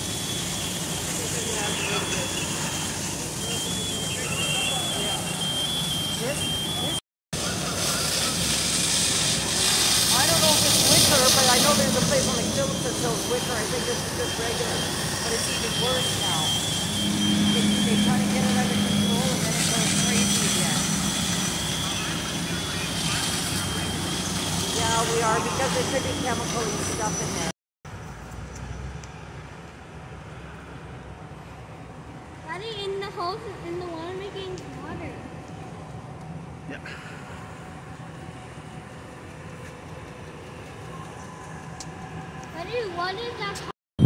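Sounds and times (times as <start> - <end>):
fire engine pumps droning: 0.0 - 43.7
hose spray hissing: 7.4 - 24.7
faint voices: 10.1 - 27.5.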